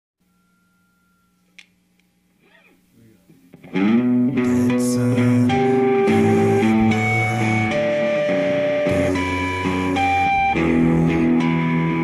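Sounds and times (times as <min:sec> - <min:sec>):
faint steady hum: 0:00.2 - 0:12.0
loud guitar song: 0:03.5 - 0:12.0.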